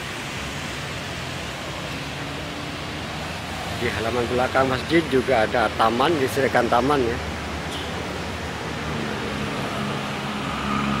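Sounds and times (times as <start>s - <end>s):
road traffic noise: 0.0s - 11.0s
vehicle engine hum: 0.0s - 11.0s.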